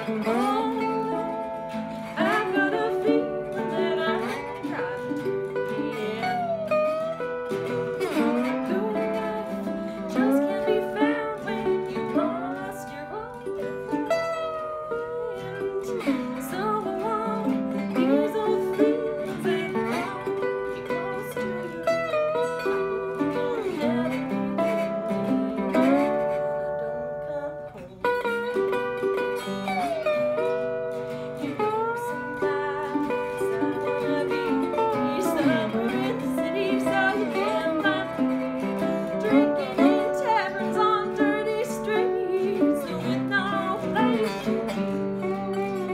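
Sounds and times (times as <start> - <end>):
acoustic guitar: 0.0 - 45.9
resonator guitar: 0.0 - 45.9.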